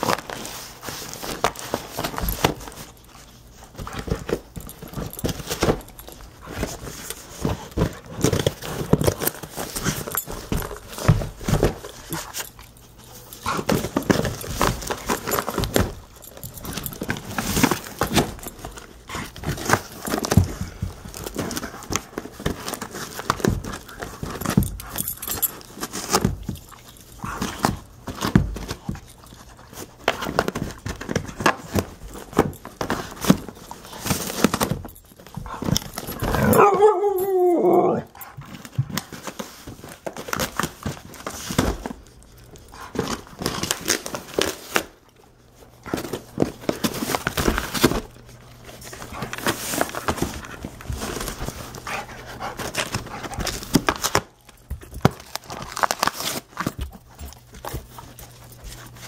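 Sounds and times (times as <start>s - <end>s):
dog clawing cardboard box: 13.4s - 37.0s, 42.8s - 45.0s, 48.8s - 59.0s
dog whining: 36.1s - 38.3s.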